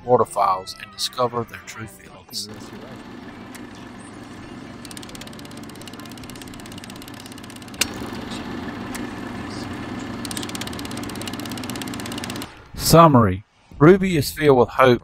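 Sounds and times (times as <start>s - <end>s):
film projector whirring and clicking: 2.4s - 12.7s.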